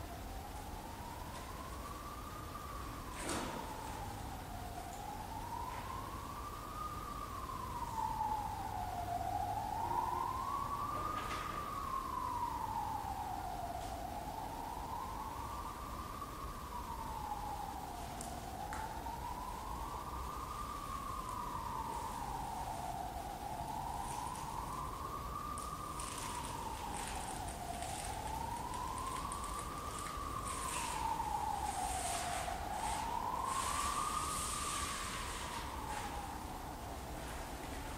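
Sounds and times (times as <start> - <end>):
siren-like wailing tone: 0.1 - 37.9.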